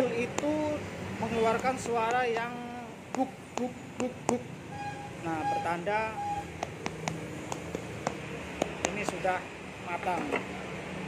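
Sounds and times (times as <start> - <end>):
knife handle tapping fruit rind: 6.6 - 9.3.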